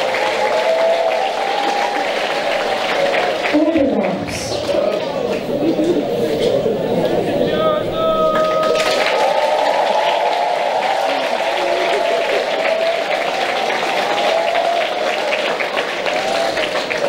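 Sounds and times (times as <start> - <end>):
crowd voices: 0.0 - 17.0
spectators applauding: 0.0 - 17.0.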